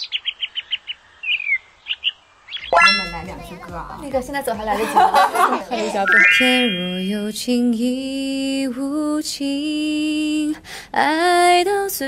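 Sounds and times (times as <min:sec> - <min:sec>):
songbird chirping: 0:00.0 - 0:03.6, 0:06.1 - 0:07.2
falling whistled bird note: 0:02.6 - 0:03.2, 0:06.1 - 0:07.2.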